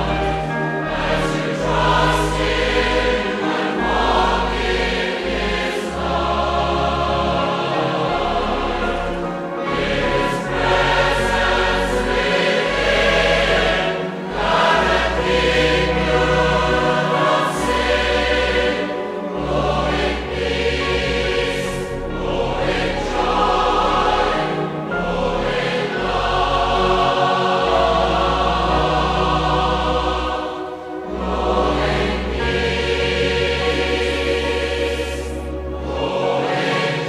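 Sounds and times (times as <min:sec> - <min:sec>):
choir singing a hymn: 0:00.0 - 0:37.0
instrumental accompaniment: 0:00.0 - 0:37.0.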